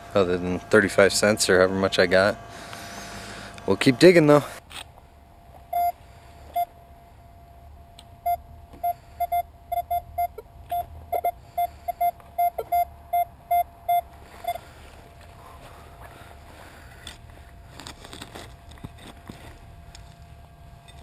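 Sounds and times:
metal detector beeps: 5.7s - 6.7s, 8.3s - 14.6s.

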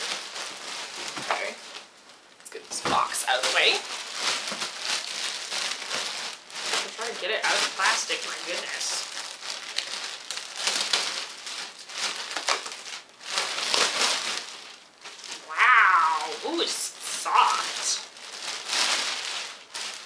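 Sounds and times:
plastic bag crinkling: 0.0s - 20.0s
high vocal sound falling: 15.4s - 18.0s.

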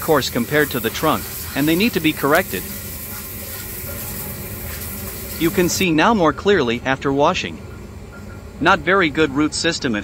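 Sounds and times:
shower head spraying water: 0.0s - 5.9s.

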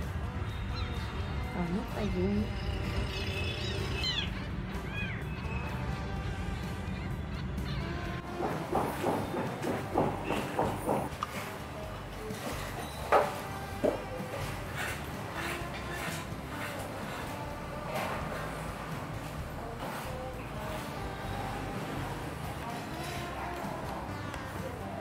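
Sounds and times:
background music: 0.0s - 25.0s
building work knocks and clatter: 8.3s - 21.2s.

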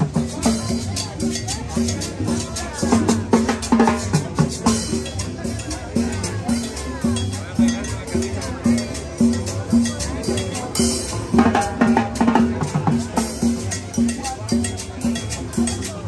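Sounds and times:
crowd voices: 0.0s - 16.0s
street band playing dance music: 0.0s - 16.0s.

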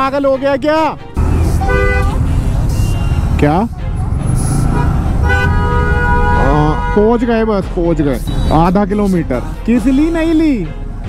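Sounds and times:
city traffic rumble: 0.0s - 11.0s
motorcycle running: 1.2s - 8.7s
vehicle horn honking: 1.4s - 3.3s, 4.2s - 7.5s.

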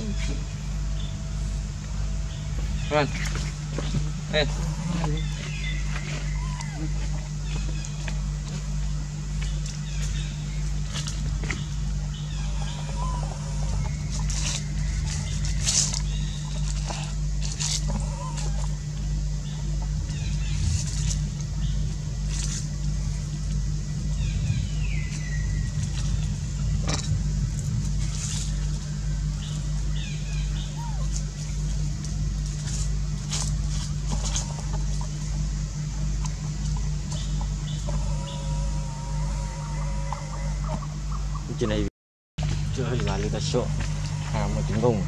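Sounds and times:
low mechanical hum: 0.0s - 45.0s.

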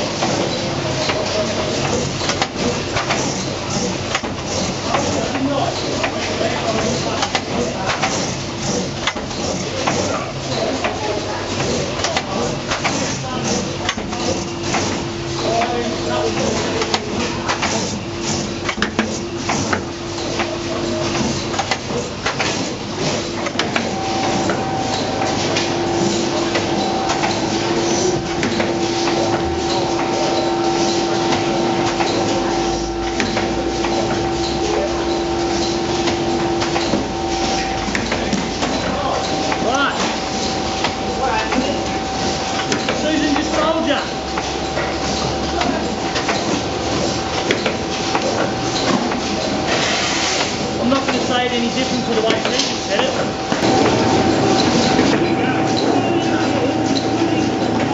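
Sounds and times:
conveyor clicks and clacks: 0.0s - 57.9s
machine humming: 0.0s - 57.9s.

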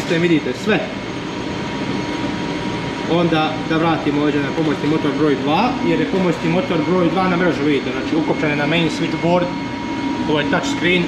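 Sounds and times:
engine room machinery drone: 0.0s - 11.0s
thin steady whine: 0.0s - 11.0s.

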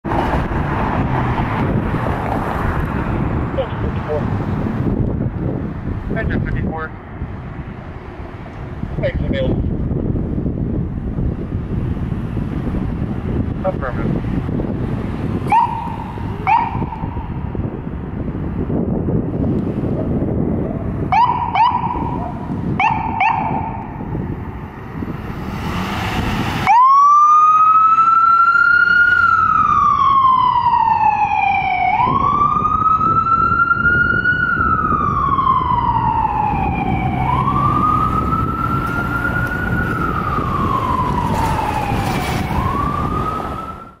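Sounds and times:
traffic noise: 0.0s - 44.0s
ambulance siren wailing: 15.4s - 18.4s, 20.0s - 24.3s, 26.1s - 44.0s
short rising siren chirps: 15.5s - 17.4s, 26.6s - 44.0s.

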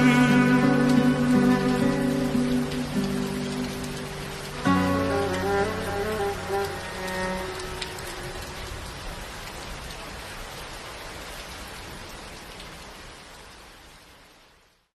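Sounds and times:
music: 0.0s - 8.7s
steady rain patter: 0.0s - 14.9s.

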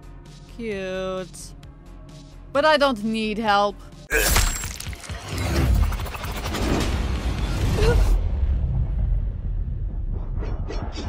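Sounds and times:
glass shattering: 4.1s - 5.5s
clattering debris: 4.2s - 5.5s
deep rumble: 5.7s - 11.0s.

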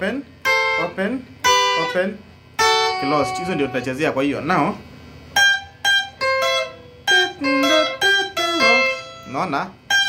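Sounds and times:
clean electric guitar picking: 0.4s - 10.0s.

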